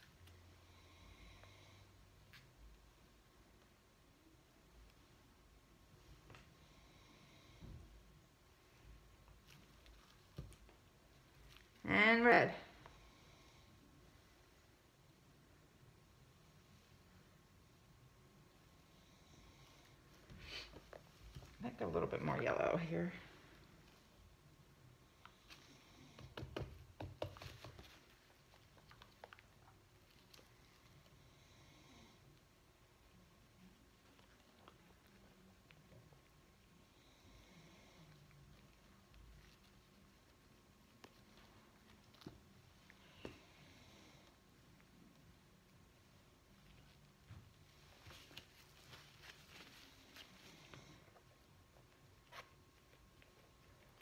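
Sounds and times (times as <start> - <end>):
gloved hands rustling on canvas: 47.5 - 51.0.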